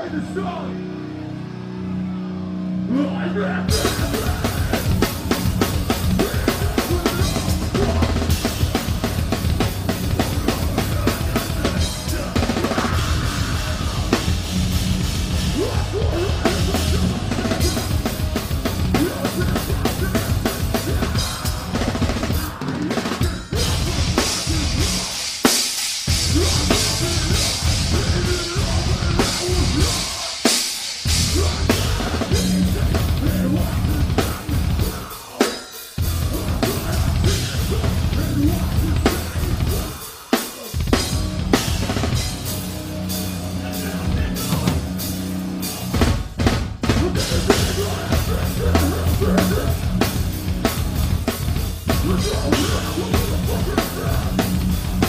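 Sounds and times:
metal band playing live: 0.0 - 55.0
bass drum: 3.7 - 22.6, 23.3 - 25.1, 26.1 - 30.1, 31.1 - 35.0, 36.0 - 39.9, 40.8 - 42.8, 43.6 - 55.0.

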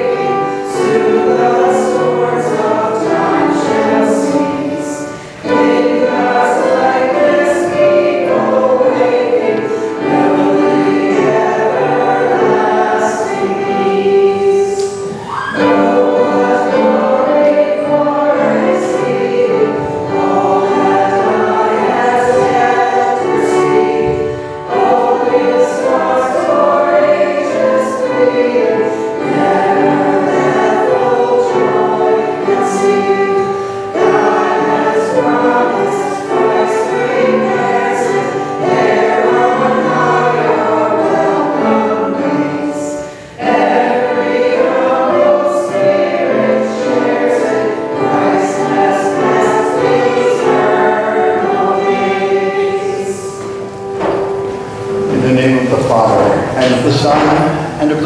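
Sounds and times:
choir singing a hymn: 0.0 - 58.0.

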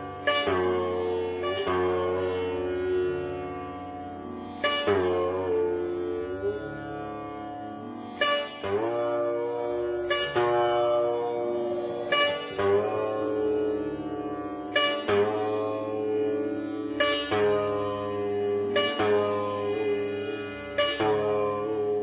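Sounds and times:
sitar playing slow notes: 0.0 - 22.0.

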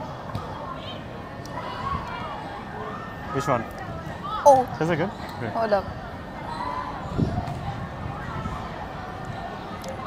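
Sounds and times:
steady outdoor hum: 0.0 - 10.0.

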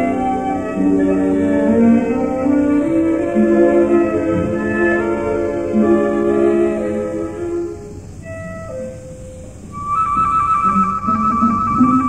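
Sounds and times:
orchestral opera music: 0.0 - 12.0.

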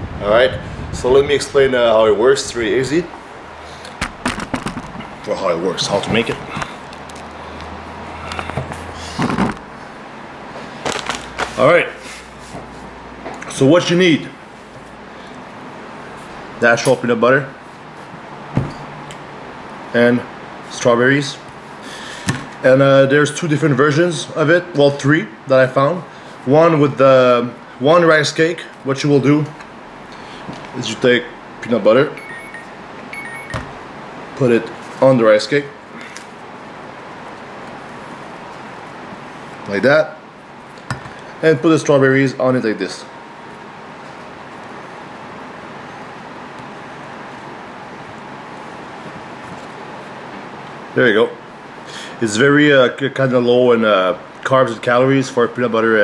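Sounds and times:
clicks and rustling on a table: 3.9 - 5.1
faint short high tones: 32.2 - 33.6.

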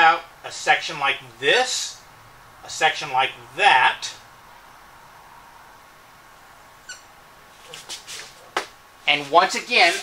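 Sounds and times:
marker squeaking on whiteboard: 6.8 - 8.7.

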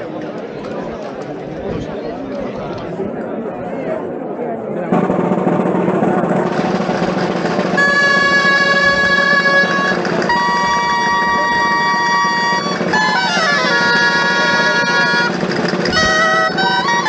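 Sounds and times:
crowd hubbub: 0.0 - 17.0
drum: 4.9 - 17.0
reedy shawm held notes: 4.9 - 17.0.

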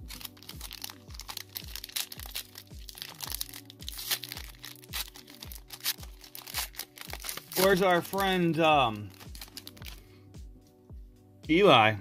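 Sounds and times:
foil pack crinkling and tearing: 0.0 - 10.0
background music with bass beat: 0.0 - 11.8.

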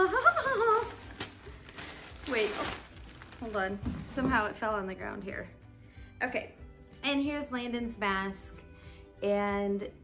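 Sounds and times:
plastic bag crinkling: 0.2 - 4.5.

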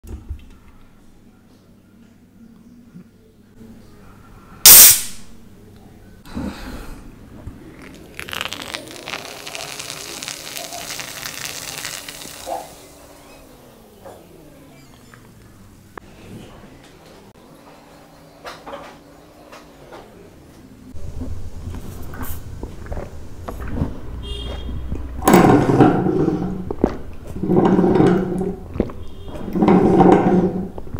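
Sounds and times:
drink can popping open: 7.8 - 12.8
loud slurp: 7.8 - 13.0
hiss of escaping carbonation: 8.1 - 13.0.

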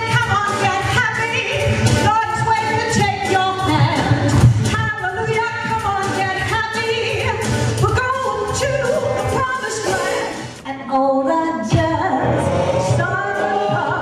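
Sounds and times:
backing music with steady beat: 0.0 - 10.7, 11.6 - 14.0
woman singing into microphone: 0.0 - 14.0.

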